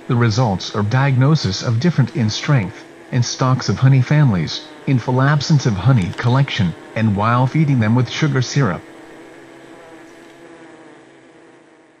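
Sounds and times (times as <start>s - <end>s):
bee colony humming: 0.0s - 12.0s.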